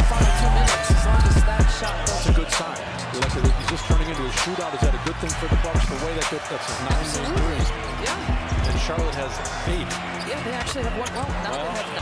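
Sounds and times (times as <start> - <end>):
indistinct voices: 0.0 - 12.0
music: 0.0 - 12.0.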